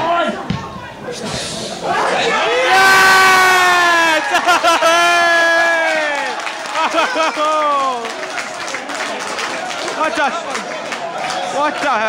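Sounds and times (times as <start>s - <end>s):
crowd cheering: 1.8s - 12.0s
person shouting in celebration: 2.7s - 8.0s.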